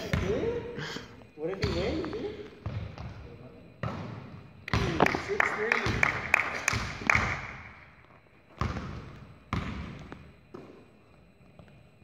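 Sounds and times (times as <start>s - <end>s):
basketball bouncing on wood floor: 1.4s - 3.2s, 3.8s - 5.2s, 8.5s - 10.8s.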